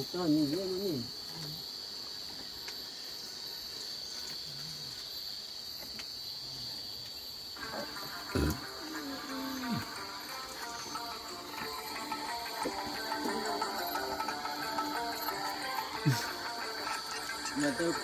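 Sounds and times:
night insects droning: 0.0s - 18.0s
background music: 7.6s - 18.0s.

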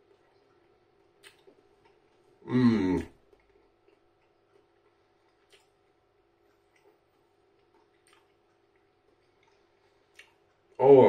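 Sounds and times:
quiet chewing clicks: 0.0s - 2.4s, 3.0s - 10.8s
faint room hum: 0.0s - 11.0s.

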